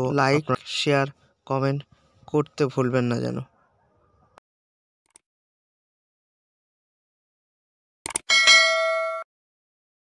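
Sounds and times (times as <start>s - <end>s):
quick clicks: 8.0s - 8.3s
bell ding ringing: 8.2s - 9.3s.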